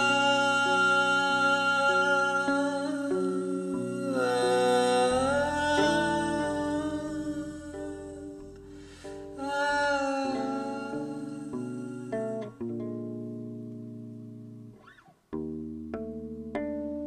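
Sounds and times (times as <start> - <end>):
electric bass guitar plucking: 0.0 - 17.0.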